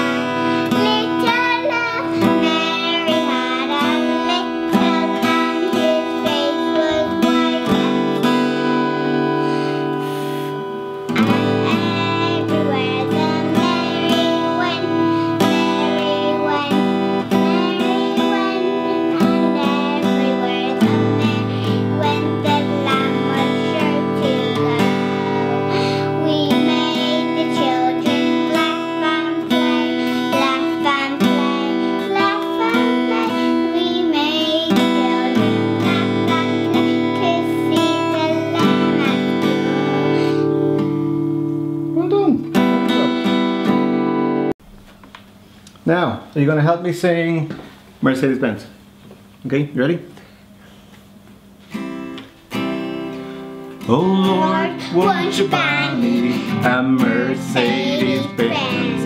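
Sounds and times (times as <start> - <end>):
person singing: 0.0 - 40.8, 53.8 - 59.0
acoustic guitar chords: 0.0 - 44.9, 51.4 - 59.0.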